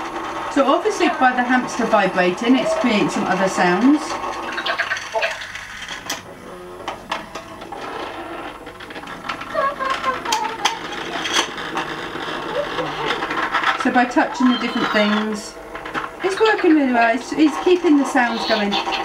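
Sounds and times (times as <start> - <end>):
toy hamster buzzing and rattling: 4.4 - 6.1, 8.0 - 15.4, 16.0 - 19.0.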